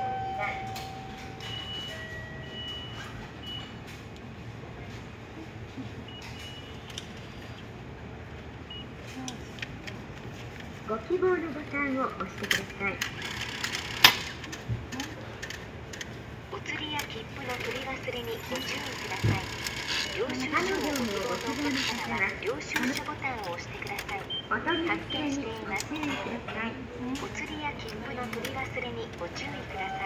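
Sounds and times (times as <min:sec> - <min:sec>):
low background hum: 0:00.0 - 0:30.0
small mechanical sounds: 0:16.8 - 0:24.4.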